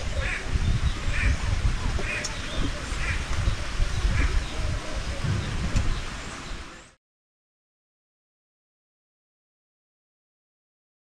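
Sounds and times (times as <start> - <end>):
low uneven rumble: 0.0 - 6.9
birds calling: 0.0 - 7.0.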